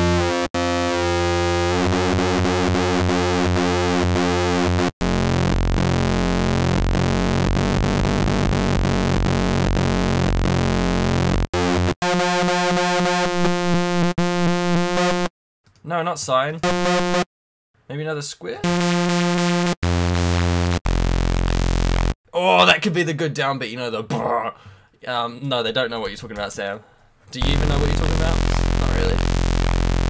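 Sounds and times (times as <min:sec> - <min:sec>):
buzzy synthesizer note: 0:00.0 - 0:15.3, 0:16.6 - 0:17.3, 0:18.6 - 0:22.2, 0:27.4 - 0:30.0.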